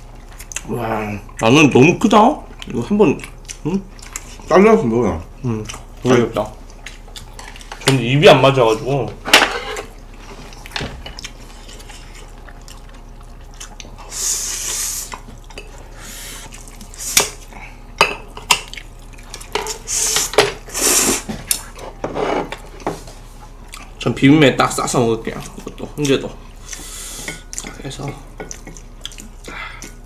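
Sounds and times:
slurping noodles: 19.8 - 21.3.

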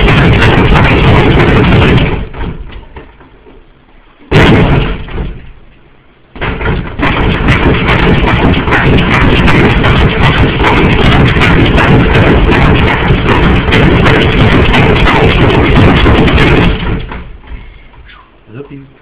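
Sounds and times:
heavily distorted music-like noise: 0.0 - 2.6, 6.4 - 17.2.

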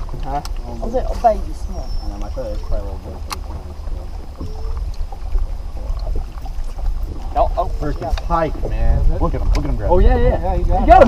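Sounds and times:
water lapping against boat hull: 0.0 - 11.0
wind rumble on microphone: 0.0 - 11.0.

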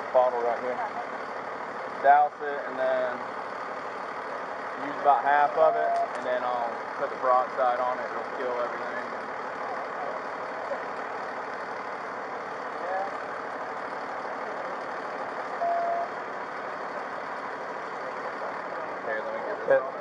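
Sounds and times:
idling vehicles and road traffic: 0.0 - 20.0
short single-tone beep: 15.6 - 16.1.

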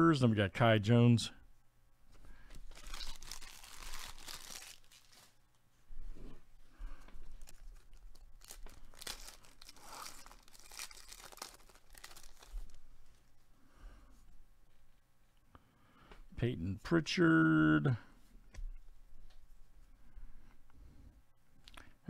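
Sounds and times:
foil wrapper tearing and crinkling: 2.6 - 5.4, 7.4 - 12.8.

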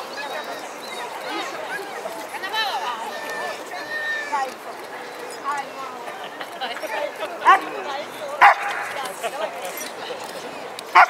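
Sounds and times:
crowd chatter: 0.0 - 11.0
dog yipping barks: 8.4 - 8.9.

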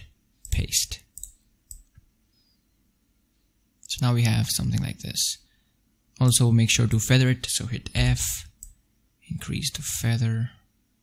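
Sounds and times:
computer mouse clicks: 0.4 - 2.1, 8.5 - 8.8.

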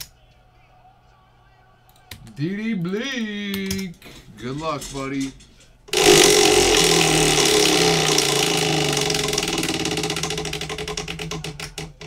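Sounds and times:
prize wheel clicking: 5.9 - 12.0.

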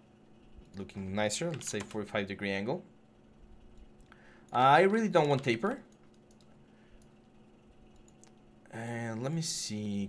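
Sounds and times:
computer keyboard and mouse clicks: 1.4 - 2.1, 3.7 - 7.2, 7.8 - 8.4.

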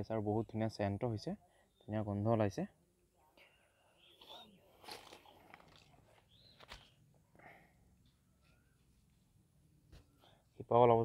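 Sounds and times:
faint high chirps: 3.4 - 7.0.

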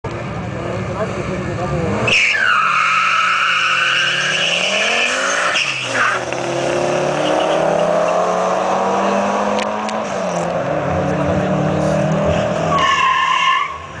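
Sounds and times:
cars accelerating hard: 0.2 - 14.0.

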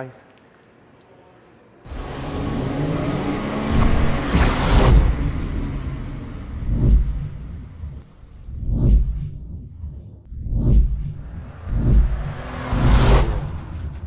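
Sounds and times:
music: 1.9 - 4.6
car engine revving: 1.9 - 9.9, 10.8 - 14.0
deep whooshing booms: 3.6 - 14.0.

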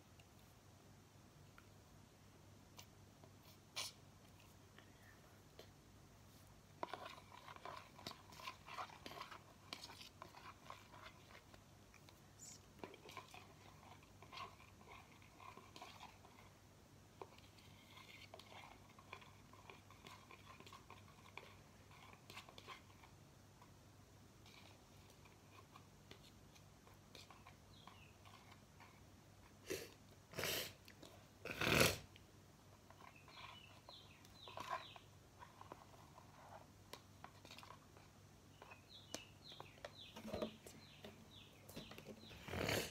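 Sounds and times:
spoon stirring slime: 2.7 - 4.7, 5.5 - 31.4, 32.6 - 42.9.

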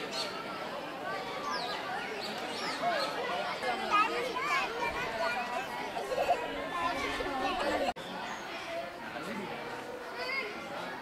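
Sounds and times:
young people chattering: 0.0 - 11.0.

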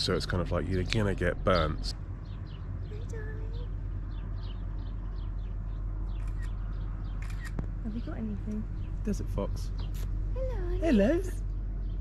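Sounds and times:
small bird chirping: 0.0 - 12.0
steady low hum: 0.0 - 12.0.

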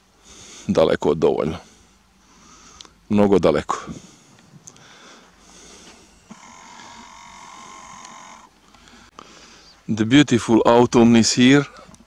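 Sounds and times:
distant quad bike engine: 4.9 - 9.8.

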